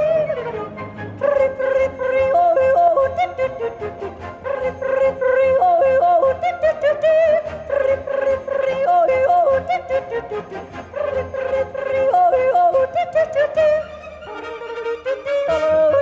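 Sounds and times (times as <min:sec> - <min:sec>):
woman yodeling: 0:01.2 - 0:13.9, 0:15.1 - 0:16.0.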